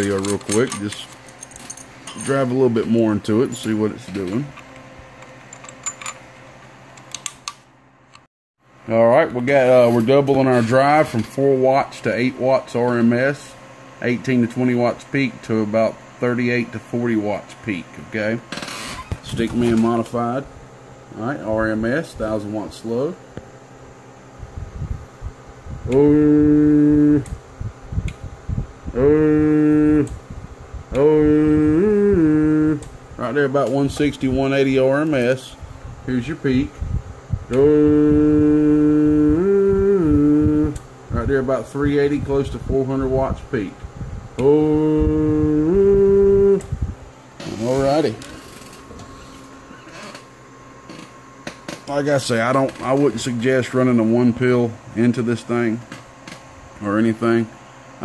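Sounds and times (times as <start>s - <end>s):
low steady hum: 0.0s - 58.0s.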